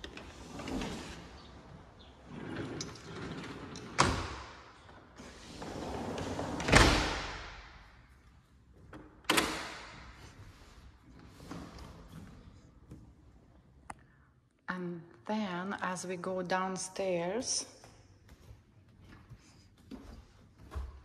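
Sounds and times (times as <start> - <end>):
sliding door rolling: 0.0 - 7.0.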